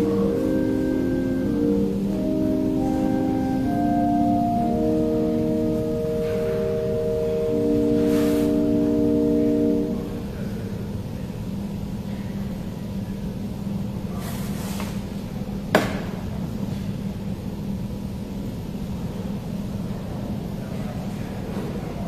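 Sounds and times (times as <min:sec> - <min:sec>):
organ chords: 0:00.0 - 0:11.1
steady low hum: 0:00.0 - 0:14.2.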